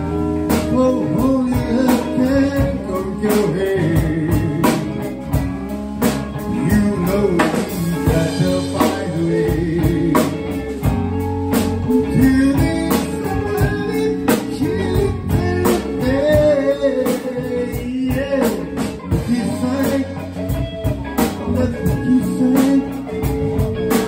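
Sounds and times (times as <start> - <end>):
person singing: 0.0 - 5.4, 6.3 - 24.0
drum kit beat: 0.0 - 24.0
electric bass: 0.0 - 24.0
electric guitars: 0.0 - 24.0.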